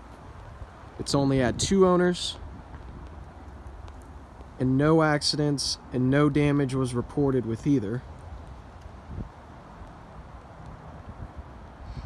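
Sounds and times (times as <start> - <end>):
wind buffeting microphone: 0.0 - 4.6, 5.8 - 12.0.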